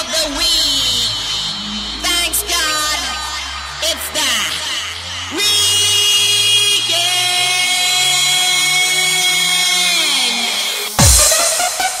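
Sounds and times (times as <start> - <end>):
hard house dance music: 0.0 - 12.0.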